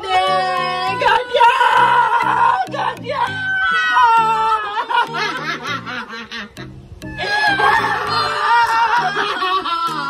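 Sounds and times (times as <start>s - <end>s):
background music with bass line: 0.0s - 10.0s
person laughing: 4.4s - 10.0s.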